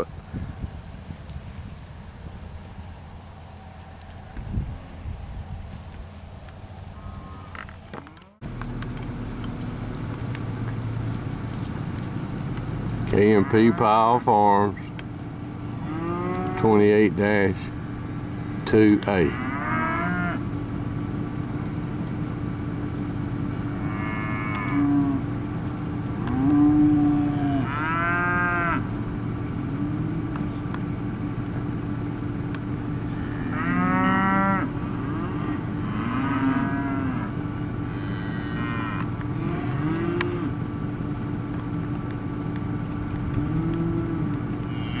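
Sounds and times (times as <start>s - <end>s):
steady low hum: 0.0s - 45.0s
cattle mooing and bawling: 13.1s - 14.2s, 15.7s - 16.8s, 19.2s - 20.6s, 23.6s - 25.5s, 26.1s - 29.0s, 33.1s - 40.6s, 43.3s - 45.0s.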